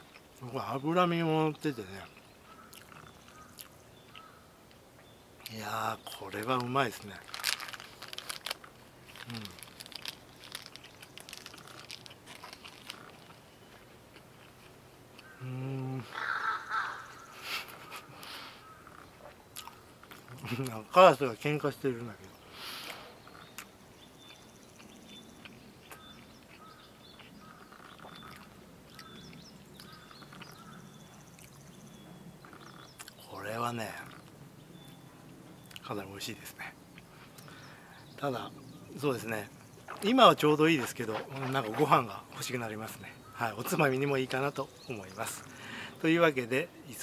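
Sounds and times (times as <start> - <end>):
crows calling: 1.6 - 4.6, 7.0 - 8.6, 15.2 - 20.1, 25.9 - 31.5, 32.3 - 33.0, 42.8 - 43.9
chewing with mouth closed: 7.3 - 15.3, 23.3 - 30.7.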